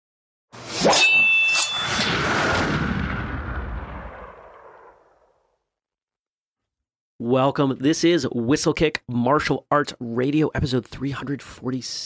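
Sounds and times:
deep boom: 2.0s - 5.4s.

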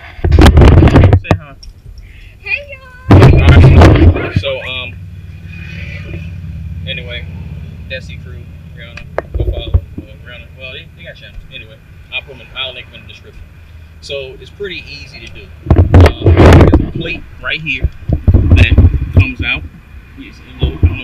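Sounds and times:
steady low hum: 0.0s - 21.0s
camera handling rumble: 0.2s - 1.9s, 9.0s - 10.1s, 15.3s - 17.2s.

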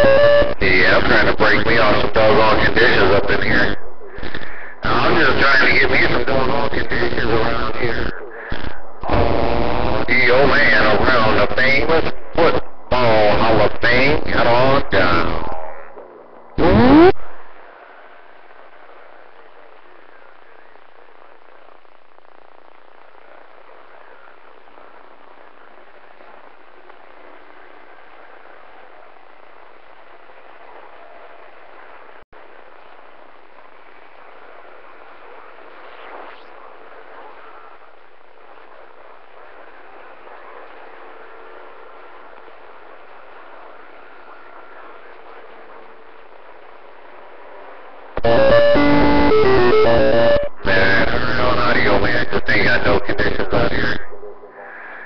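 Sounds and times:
radio static hiss: 0.0s - 55.0s
strong radio signal: 0.0s - 55.0s.

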